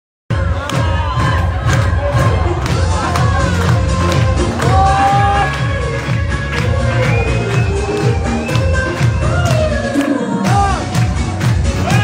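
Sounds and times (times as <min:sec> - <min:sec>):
heavy pulsing bass beat: 0:00.3 - 0:09.9, 0:10.5 - 0:12.0
crowd cheering and shouting: 0:00.3 - 0:12.0
loud dance music: 0:00.3 - 0:12.0.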